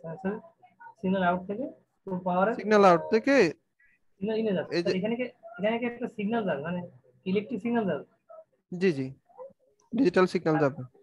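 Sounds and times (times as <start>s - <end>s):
man speaking: 2.2s - 3.6s, 4.2s - 8.1s, 9.9s - 10.9s.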